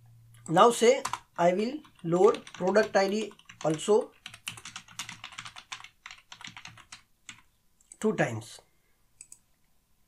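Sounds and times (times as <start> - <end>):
computer keyboard typing: 0.4 - 8.1, 9.2 - 9.4.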